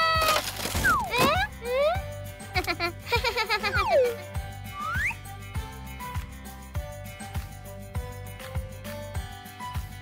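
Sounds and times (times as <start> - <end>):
background music with steady beat: 1.1 - 10.0
cartoon whistle sound effect: 3.7 - 5.2.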